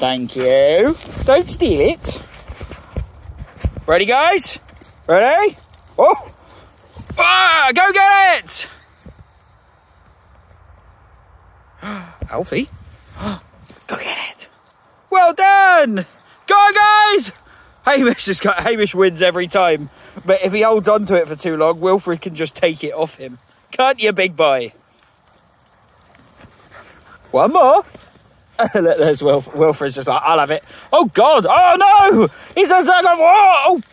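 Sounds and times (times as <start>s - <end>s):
footsteps on rough grass: 0.0s - 15.1s, 17.4s - 33.9s.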